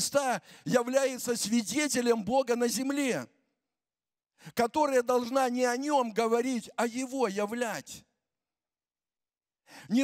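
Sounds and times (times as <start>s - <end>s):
man speaking: 4.5s - 8.0s.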